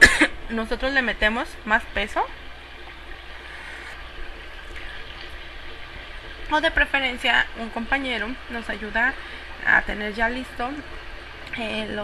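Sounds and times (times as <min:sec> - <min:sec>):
steady hiss: 0:03.3 - 0:05.1.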